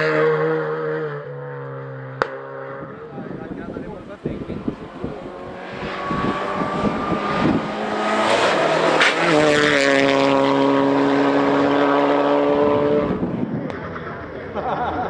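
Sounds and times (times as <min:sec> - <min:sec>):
rally car engine revving: 0:00.0 - 0:15.0.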